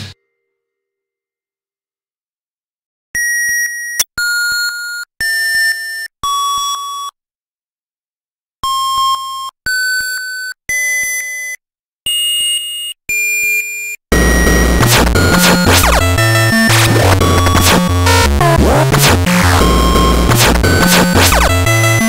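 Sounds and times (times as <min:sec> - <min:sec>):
electronic beeps: 0:13.2 - 0:22.0
breakcore music with heavy bass: 0:14.1 - 0:22.0.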